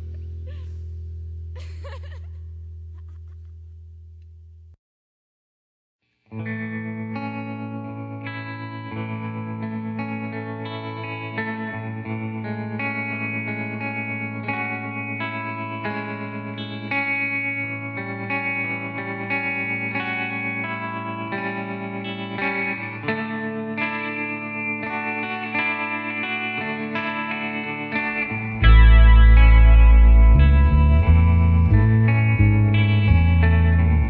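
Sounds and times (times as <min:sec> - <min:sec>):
deep bass: 0:00.0 - 0:04.8, 0:28.3 - 0:34.0
electric guitar picking a melody: 0:06.3 - 0:34.0.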